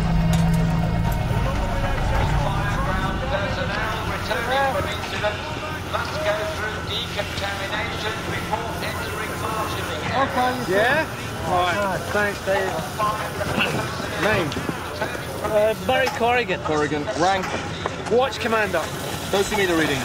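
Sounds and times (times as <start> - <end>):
low vehicle engine rumble: 0.0 - 10.4
people talking over one another: 0.8 - 20.0.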